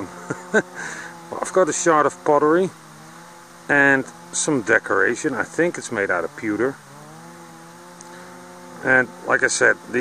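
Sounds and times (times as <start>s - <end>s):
engine running steadily: 0.0s - 10.0s.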